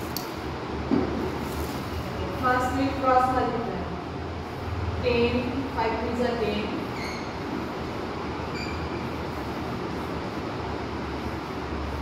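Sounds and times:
steady rushing noise: 9.1s - 12.0s.

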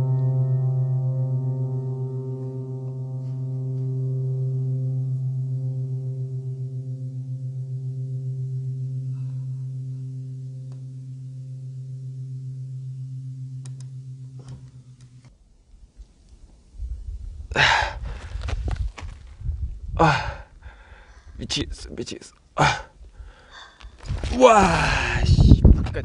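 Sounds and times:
low pulsing drone: 0.0s - 21.4s.

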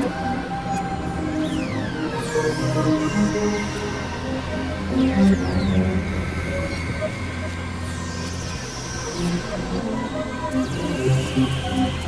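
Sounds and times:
electronic synthesizer drone music: 0.0s - 12.0s.

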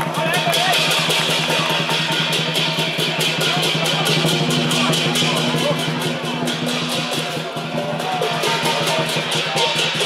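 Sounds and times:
big drum beating: 0.0s - 10.0s
hand cymbals clashing: 0.0s - 10.0s.

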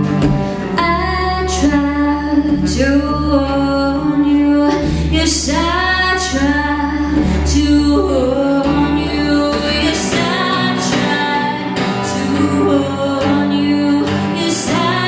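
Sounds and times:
strummed acoustic guitar: 0.0s - 15.0s
woman singing: 0.0s - 15.0s.

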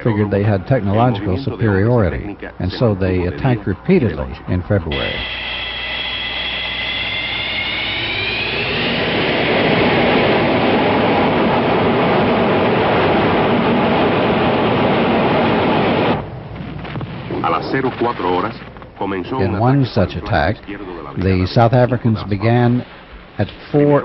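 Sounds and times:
jet engine whine and roar: 2.2s - 19.6s.

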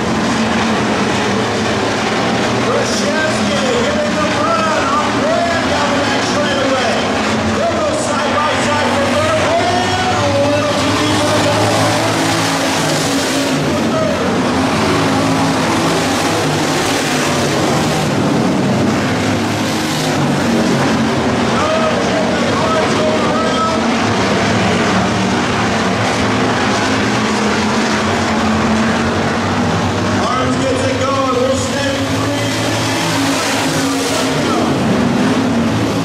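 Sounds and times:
race car engines: 0.0s - 36.0s.

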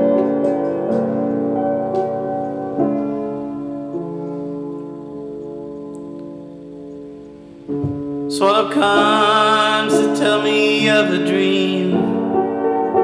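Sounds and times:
piano chords: 0.0s - 13.0s.

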